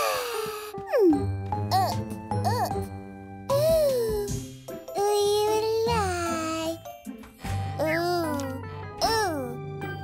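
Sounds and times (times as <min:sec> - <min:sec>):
gentle cartoon music with chimes: 0:00.2 - 0:10.0.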